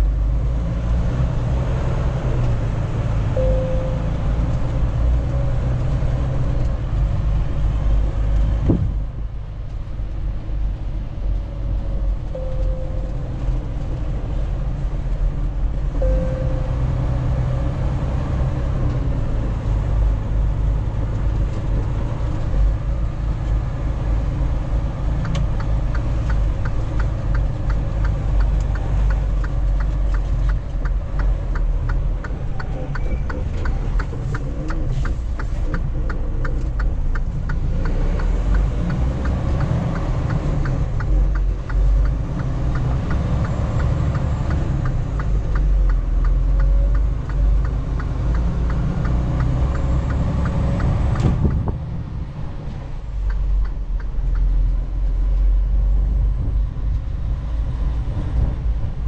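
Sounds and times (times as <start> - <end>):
truck engine and road rumble: 0.0 - 59.0.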